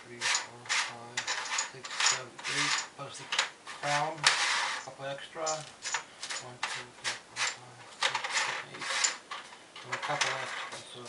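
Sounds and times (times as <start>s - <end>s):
cardboard scraping: 3.7s - 4.9s.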